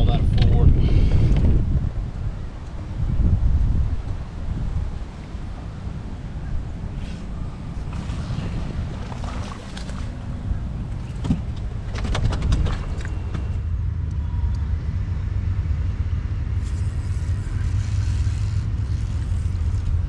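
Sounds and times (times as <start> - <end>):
wind buffeting microphone: 0.0 - 16.8.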